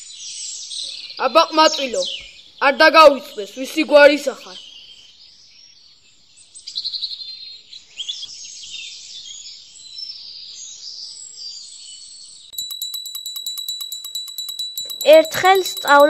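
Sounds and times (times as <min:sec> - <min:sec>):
bell ringing with rapid rattle: 0:12.6 - 0:16.0.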